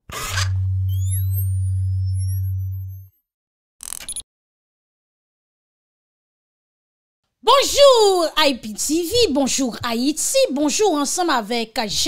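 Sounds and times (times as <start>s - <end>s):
deep synth drone: 0.2s - 3.1s
high whistling tones: 0.6s - 3.1s.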